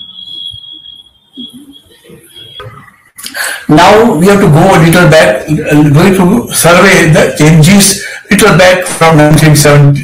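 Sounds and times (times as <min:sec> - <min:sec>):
high-pitched electronic whine: 0:00.0 - 0:05.0.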